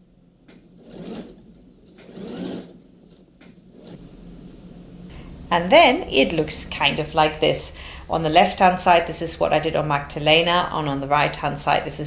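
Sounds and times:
electric sewing machine stitching: 0.5 - 4.1.

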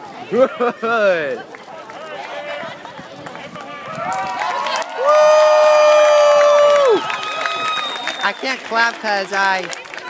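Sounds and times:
crowd yelling: 3.6 - 8.8.

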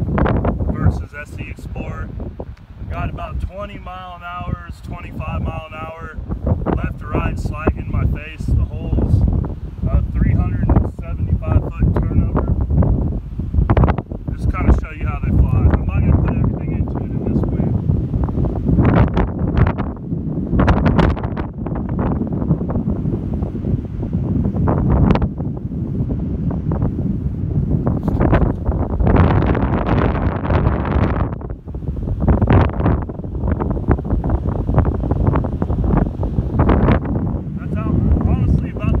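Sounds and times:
gusty wind buffeting microphone: 0.0 - 39.0.

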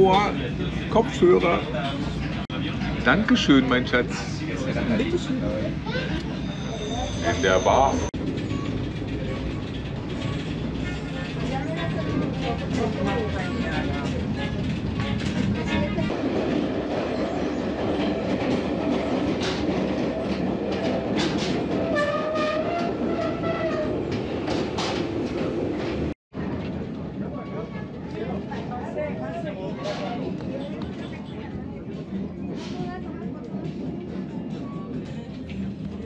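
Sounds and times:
train rumbling on track: 0.0 - 36.0
faint voices: 26.4 - 36.0.

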